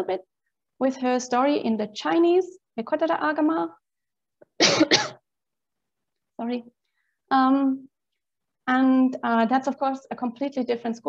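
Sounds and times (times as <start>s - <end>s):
woman coughing: 4.6s - 5.2s.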